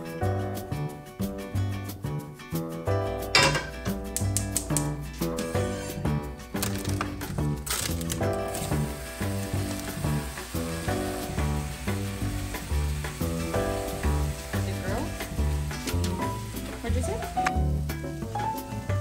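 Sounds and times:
meat sizzling in a pan: 6.6s - 19.0s.

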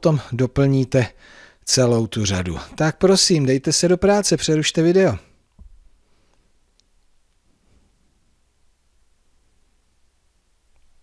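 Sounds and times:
man speaking: 0.0s - 5.3s.

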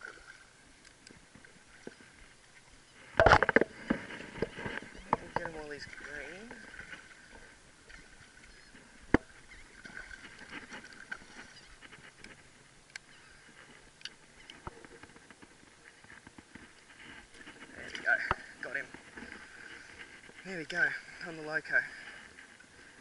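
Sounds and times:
water splashing: 0.0s - 23.0s.

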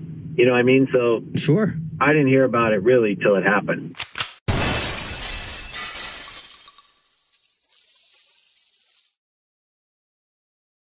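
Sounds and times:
glass breaking: 4.5s - 9.2s
glass shards tinkling: 4.9s - 9.2s.

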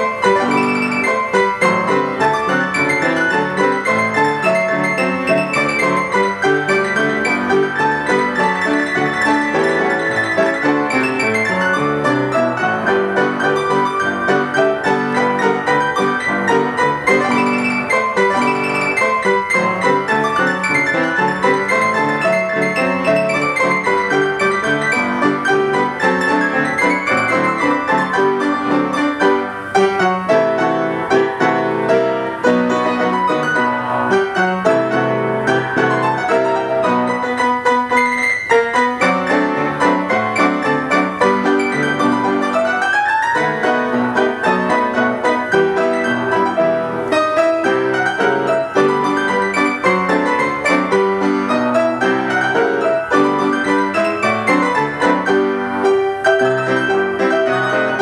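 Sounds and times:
player piano playing: 0.0s - 58.0s.

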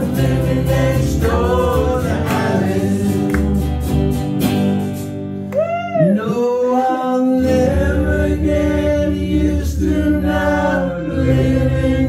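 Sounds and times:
voices singing together: 0.0s - 3.9s, 6.1s - 12.0s.

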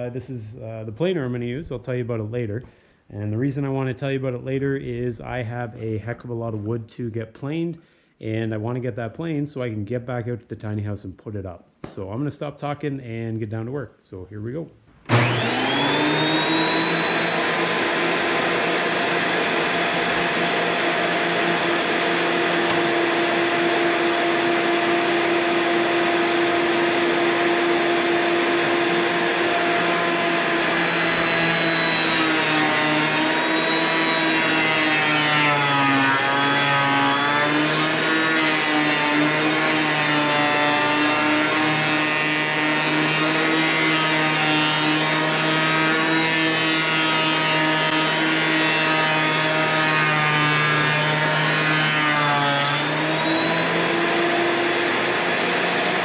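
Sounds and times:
planer cutting board: 15.1s - 56.0s
planer motor whine: 15.1s - 56.0s.

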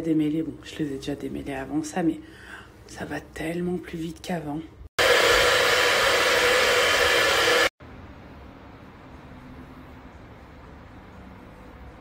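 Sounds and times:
hair dryer blowing: 5.0s - 7.8s.

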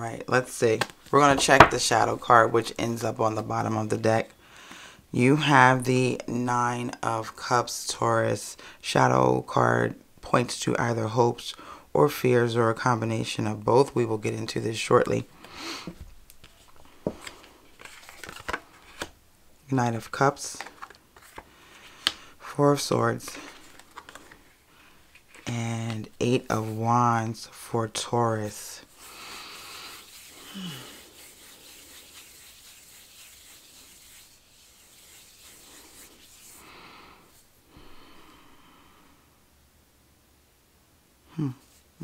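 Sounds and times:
breath: 4.4s - 5.1s, 8.6s - 8.8s, 11.6s - 11.9s, 21.5s - 22.4s, 29.0s - 31.0s, 36.6s - 39.4s
hands rubbing: 28.9s - 37.6s.

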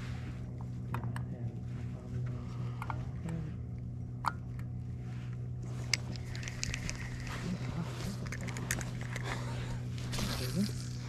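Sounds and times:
steady low hum: 0.0s - 11.0s
fishing reel clicking: 6.2s - 7.3s.

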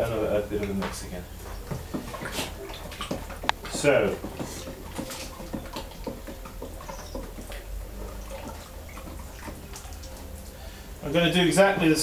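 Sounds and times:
stick tapping and scraping bucket: 0.0s - 10.6s
liquid sloshing in a bucket: 0.0s - 12.0s.

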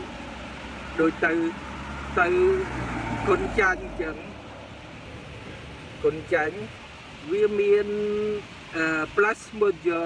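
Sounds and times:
road traffic rumble: 0.0s - 10.0s
man speaking: 1.0s - 1.6s, 2.2s - 4.4s, 6.0s - 10.0s.

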